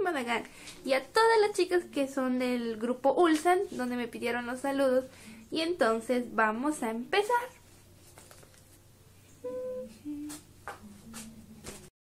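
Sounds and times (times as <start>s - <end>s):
woman humming: 9.3s - 11.9s.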